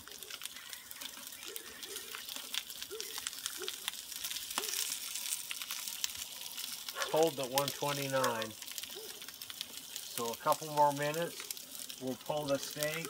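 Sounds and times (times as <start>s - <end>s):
steak sizzling on a grill: 0.0s - 13.0s.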